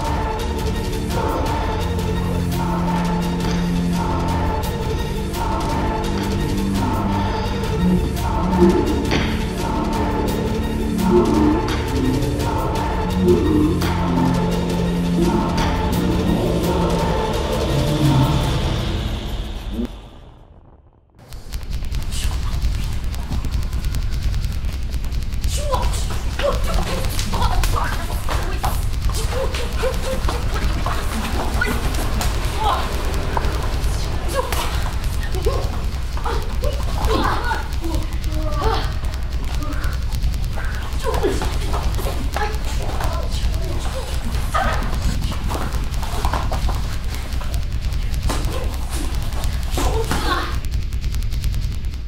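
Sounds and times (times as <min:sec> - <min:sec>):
people shouting and grunting: 0:00.0 - 0:19.9, 0:22.0 - 0:50.8
music with low bass: 0:00.0 - 0:52.0
steady low rumble: 0:00.0 - 0:52.0
feet stamping: 0:21.5 - 0:52.0
slaps and knocks of blows: 0:34.5 - 0:51.5.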